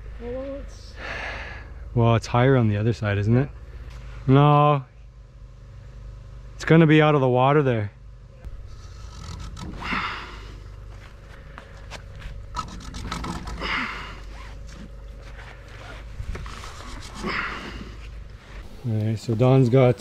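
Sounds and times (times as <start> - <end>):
man breathing hard: 1.0 - 1.9, 9.8 - 12.0, 13.4 - 14.3, 17.0 - 18.2
rope and gloves clicking and scraping: 11.6 - 19.4.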